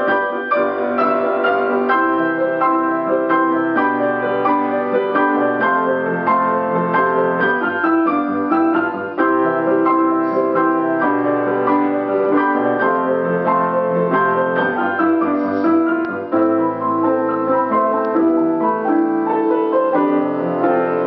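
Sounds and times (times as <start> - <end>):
piano duet: 0.0 - 21.0.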